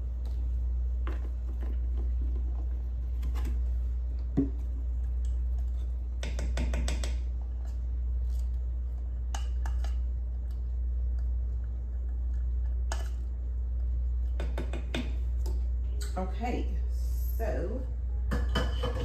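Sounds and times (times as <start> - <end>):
low hum: 15.1 - 19.0.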